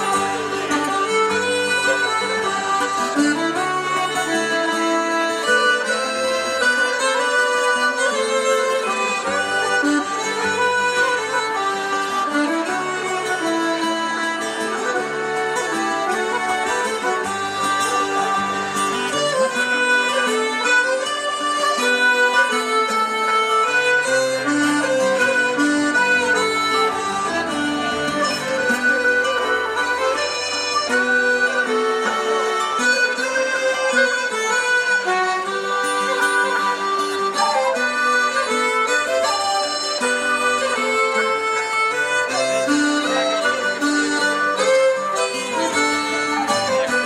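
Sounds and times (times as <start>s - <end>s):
reed-like accompaniment: 0.0s - 47.0s
violin melody: 0.0s - 47.0s.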